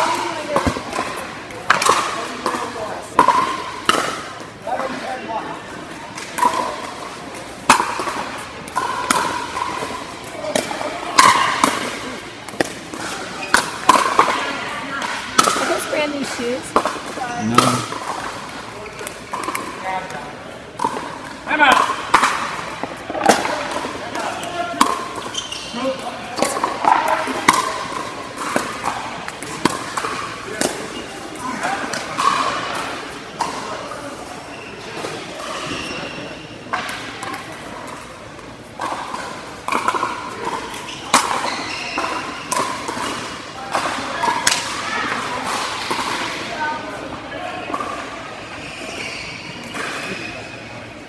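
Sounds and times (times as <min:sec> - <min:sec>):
murmur of voices: 0:00.0 - 0:51.0.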